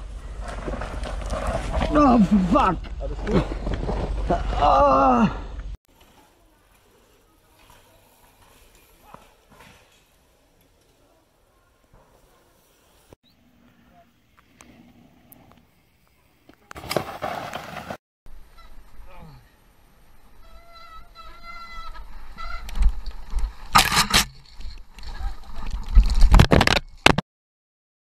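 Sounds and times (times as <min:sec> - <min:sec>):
bike rolling and rattling: 0:00.0 - 0:04.8, 0:05.6 - 0:13.2, 0:19.7 - 0:27.2.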